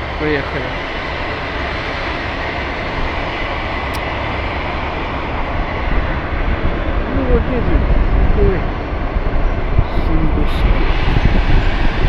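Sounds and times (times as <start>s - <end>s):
rushing air: 0.0s - 12.0s.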